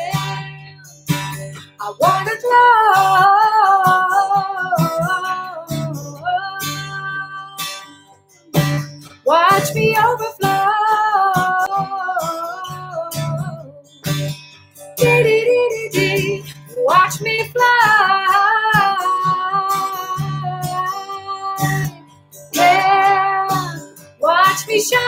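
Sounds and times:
woman singing: 0:00.0 - 0:14.2, 0:15.0 - 0:25.0
strummed acoustic guitar: 0:00.0 - 0:25.0.

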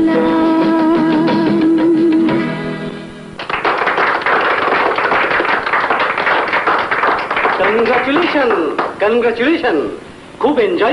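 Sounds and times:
audience applause: 0:03.4 - 0:09.0.

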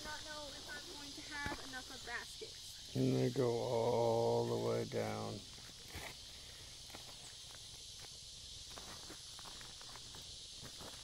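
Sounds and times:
steady hiss: 0:00.0 - 0:11.0
plants rustling: 0:05.5 - 0:11.0.

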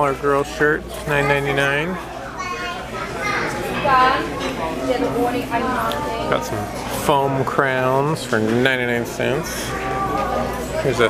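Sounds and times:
people talking: 0:00.0 - 0:11.0
child calling and chattering: 0:02.3 - 0:03.8.

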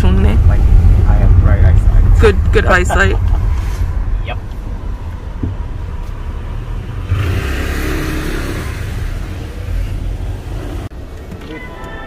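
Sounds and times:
car engine: 0:00.0 - 0:11.9
road rumble: 0:00.0 - 0:12.0.

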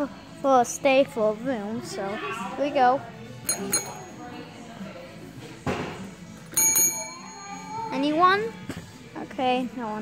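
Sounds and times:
desk service bell ding: 0:03.5 - 0:04.1, 0:06.5 - 0:07.9.

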